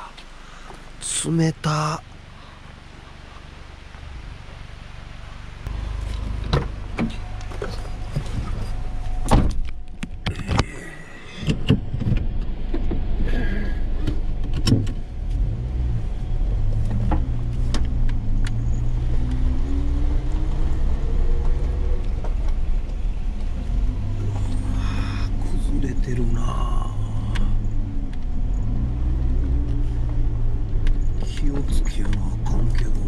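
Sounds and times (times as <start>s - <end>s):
car engine droning: 0.0s - 33.0s.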